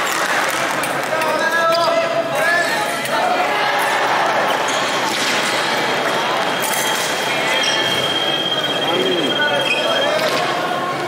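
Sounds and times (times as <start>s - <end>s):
voices around hall: 0.0s - 11.0s
high electronic tone: 6.2s - 10.4s.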